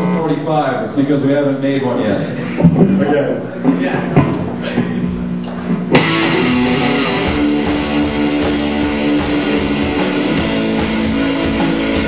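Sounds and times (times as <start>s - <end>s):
held electric guitar note: 5.9s - 12.0s
rock band playing loudly: 5.9s - 12.0s.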